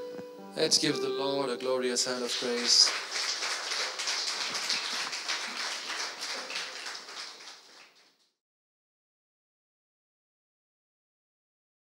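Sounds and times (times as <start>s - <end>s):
congregation applauding: 1.7s - 8.3s.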